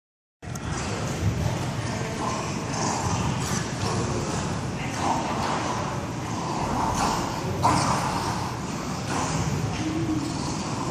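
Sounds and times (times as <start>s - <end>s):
dogs growling: 0.5s - 10.9s.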